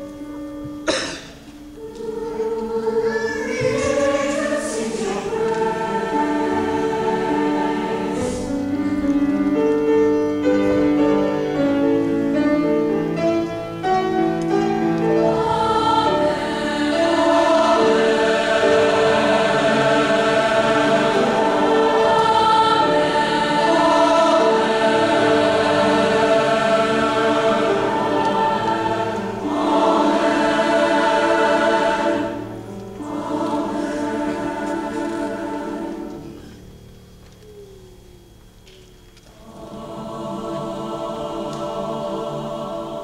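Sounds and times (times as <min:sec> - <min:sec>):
choir singing sustained chords: 0:00.0 - 0:43.0.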